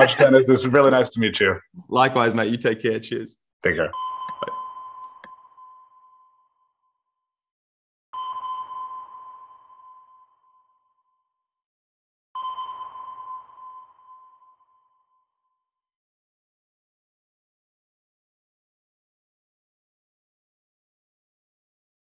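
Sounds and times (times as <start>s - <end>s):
electronic sonar ping: 3.9s - 6.8s, 8.2s - 11.4s, 12.4s - 15.5s.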